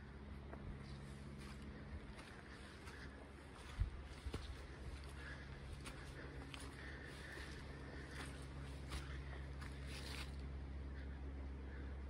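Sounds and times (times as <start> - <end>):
low steady rumble: 0.0 - 12.0
footsteps on leaves: 1.2 - 10.6.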